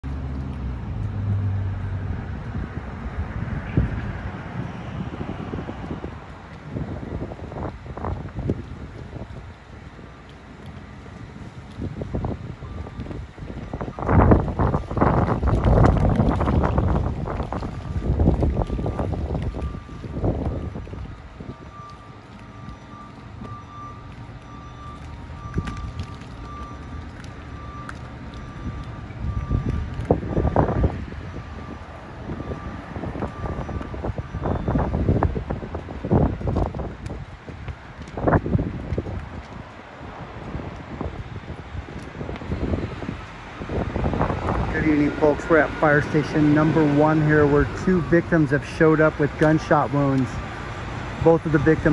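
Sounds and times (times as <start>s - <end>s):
passing road traffic: 0.0s - 51.9s
wind buffeting microphone: 0.6s - 51.9s.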